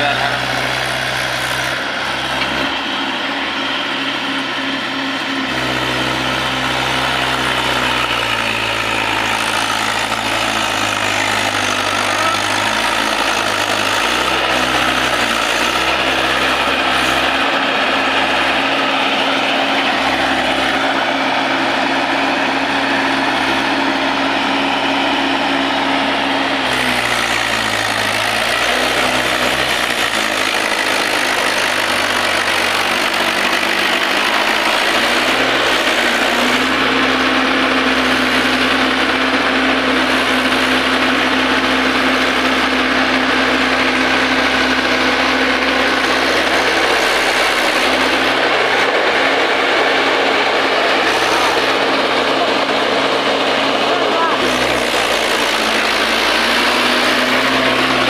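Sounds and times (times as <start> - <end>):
tractor diesel engine running: 0.0 - 58.0.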